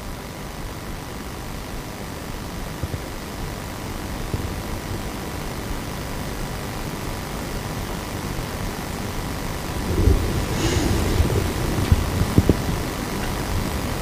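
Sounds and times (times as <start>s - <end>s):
faint steady hum: 0.0s - 14.0s
low rumble with hiss: 1.4s - 14.0s.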